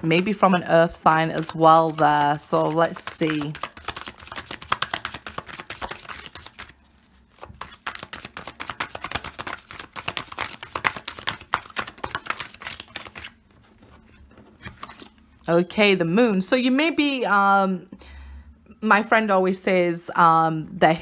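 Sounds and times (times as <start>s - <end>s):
playing cards being shuffled: 1.1s - 15.2s.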